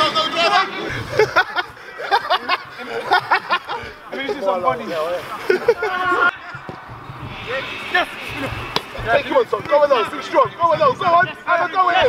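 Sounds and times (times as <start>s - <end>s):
men calling out: 0.0s - 12.0s.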